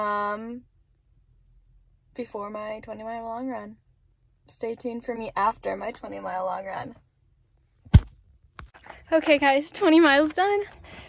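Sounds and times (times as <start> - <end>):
sharp thump: 7.9 - 8.2.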